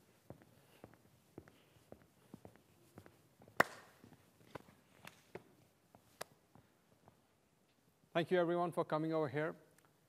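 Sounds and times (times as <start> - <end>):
footsteps on a stage floor: 0.0 - 7.3
sharp hand slap: 3.6 - 4.0.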